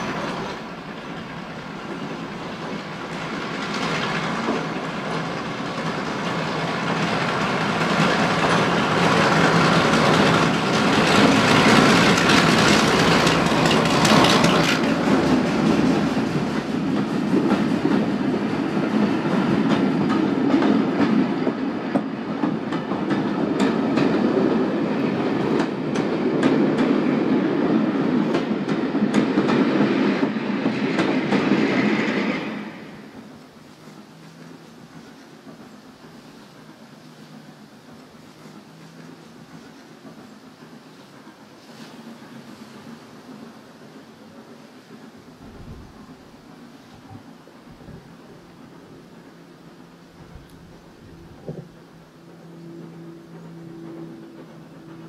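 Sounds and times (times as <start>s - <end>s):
diesel locomotive engine: 0.0s - 55.0s
train wheels clickety-clack: 0.0s - 55.0s.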